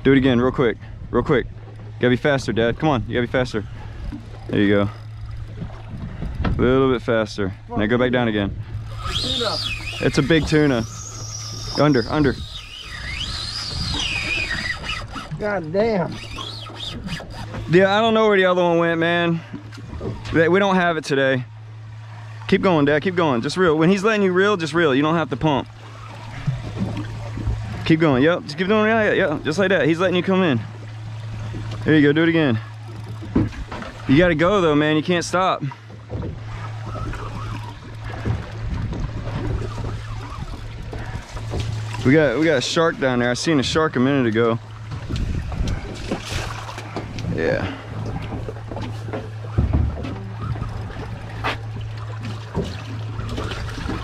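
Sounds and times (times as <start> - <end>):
low steady rumble: 0.0 - 54.0
outboard motor idling: 0.0 - 54.0
water washing around hull: 0.0 - 54.0
fishing reel drag whining: 3.4 - 6.3, 8.6 - 18.2, 23.0 - 54.0.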